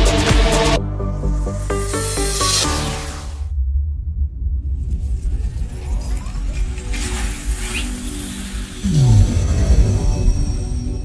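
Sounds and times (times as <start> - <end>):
cinematic music: 0.0 - 11.0
deep sub-bass rumble: 3.3 - 7.4.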